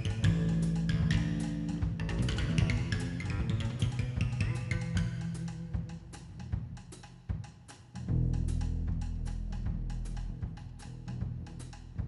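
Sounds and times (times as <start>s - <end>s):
double bass playing: 0.0s - 6.8s, 8.0s - 12.0s.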